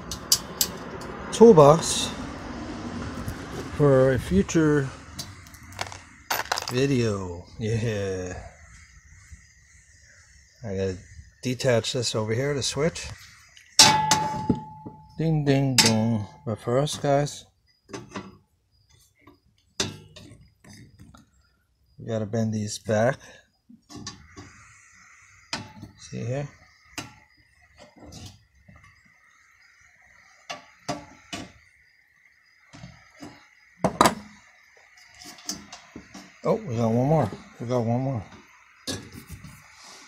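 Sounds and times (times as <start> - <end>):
metal clang ringing: 13.8 - 16.5.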